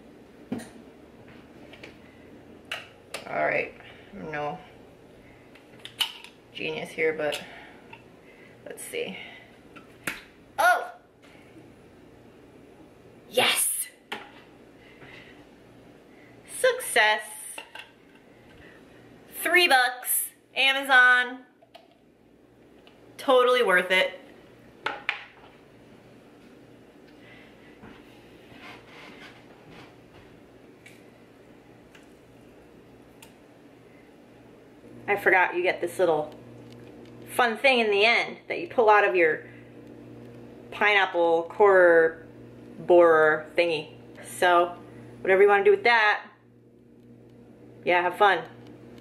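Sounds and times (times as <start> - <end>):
woman's wordless exclamations: 10.6 - 11.0, 13.3 - 13.9.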